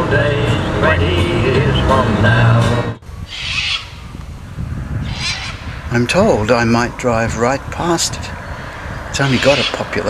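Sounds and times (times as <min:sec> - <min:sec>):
low rumble: 0:00.0 - 0:09.3
high-pitched bird call: 0:03.3 - 0:04.0, 0:05.0 - 0:05.7, 0:09.2 - 0:09.8.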